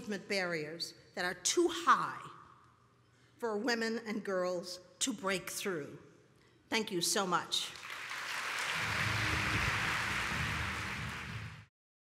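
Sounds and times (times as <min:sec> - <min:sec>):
audience applauding: 0:07.8 - 0:11.7.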